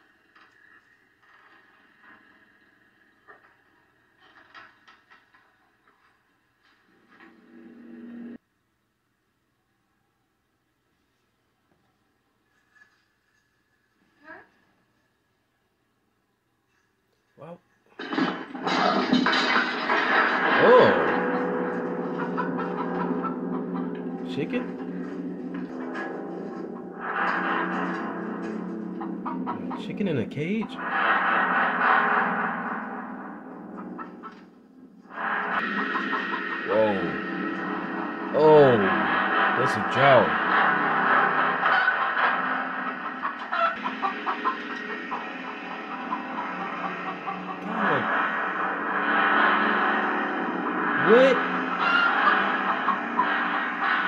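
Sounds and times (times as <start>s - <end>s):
dissonant droning score: 18.0s - 54.0s.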